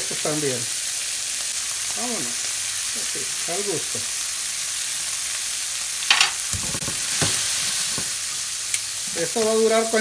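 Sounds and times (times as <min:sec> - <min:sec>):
shrimp sizzling in frying pan: 0:00.0 - 0:10.0.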